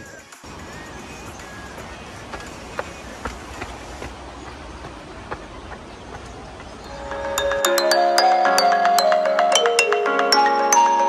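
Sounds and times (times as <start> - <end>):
mallet-like melody music: 6.8 - 11.0.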